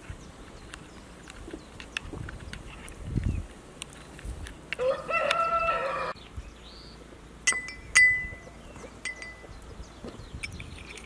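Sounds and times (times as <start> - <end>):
rooster crowing: 4.8 - 6.2.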